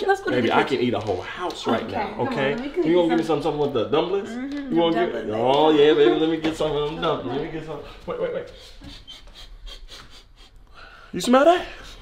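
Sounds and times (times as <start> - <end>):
man sniffing: 8.5 - 11.0.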